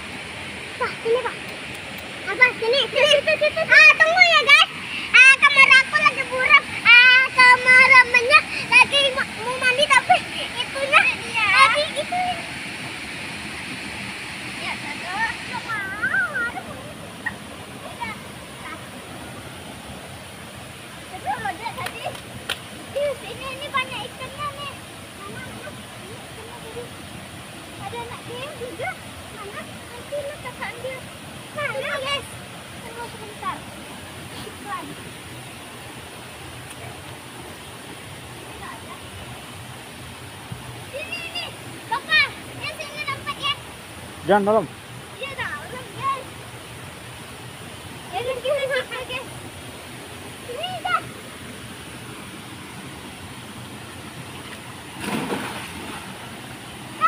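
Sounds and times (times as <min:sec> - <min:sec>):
waterfall rushing into pool: 0:00.0 - 0:57.0.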